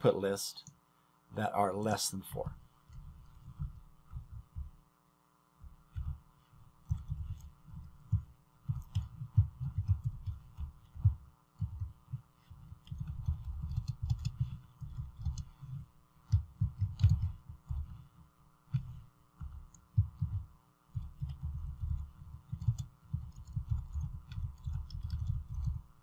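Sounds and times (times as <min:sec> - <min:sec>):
faint electrical hum: 0:00.0 - 0:26.0
computer keyboard typing: 0:06.8 - 0:25.9.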